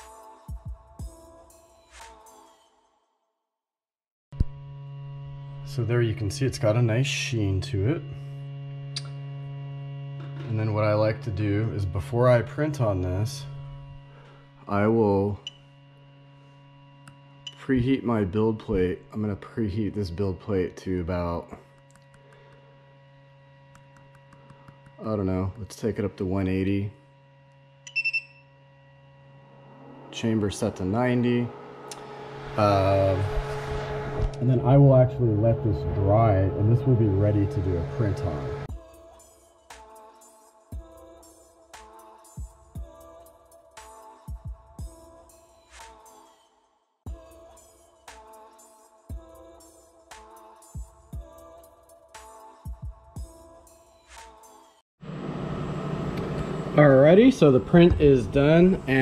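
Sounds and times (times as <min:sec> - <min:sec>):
faint machine hum: 0:04.4 - 0:38.7
man speaking: 0:05.7 - 0:08.0, 0:10.5 - 0:13.5, 0:14.7 - 0:15.4, 0:17.6 - 0:21.6, 0:25.0 - 0:26.9, 0:30.1 - 0:31.5, 0:32.6 - 0:33.4, 0:34.4 - 0:38.7, 0:56.8 - 0:59.0
short electronic beep: 0:27.9 - 0:28.5.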